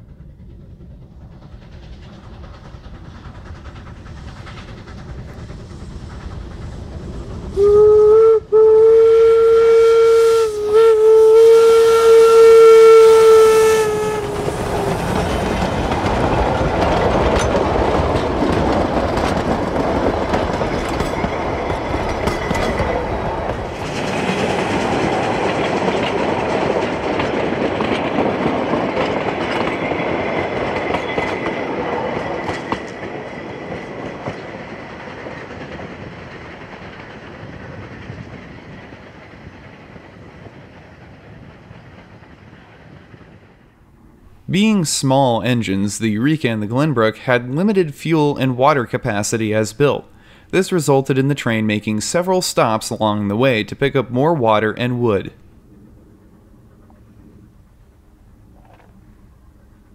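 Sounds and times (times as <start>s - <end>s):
train rumble and rail clatter: 0.0s - 59.9s
steam locomotive whistle: 7.6s - 15.1s.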